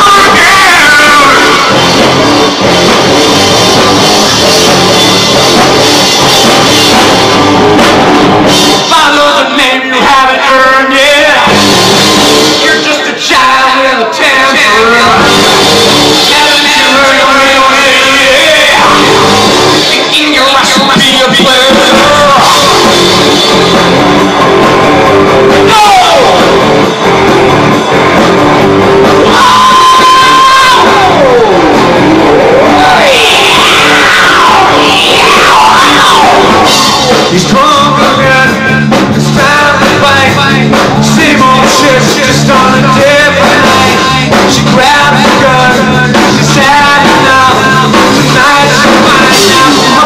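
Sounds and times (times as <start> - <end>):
person singing: 0.0 - 5.8, 12.3 - 28.5, 29.1 - 50.0
rock band playing live: 0.0 - 50.0.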